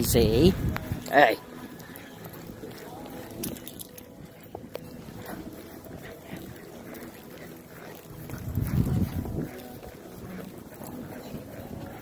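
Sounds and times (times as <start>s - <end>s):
hooves scuffing on dirt: 0.0s - 12.0s.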